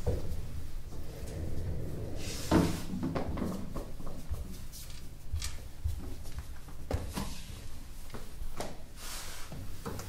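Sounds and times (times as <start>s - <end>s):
chair scraping and thumping: 0.9s - 4.0s.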